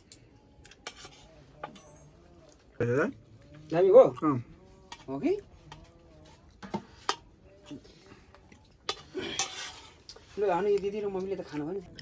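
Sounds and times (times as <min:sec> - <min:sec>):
metal spoon scraping metal bowl: 0:00.7 - 0:02.2, 0:04.8 - 0:07.3, 0:08.9 - 0:11.1.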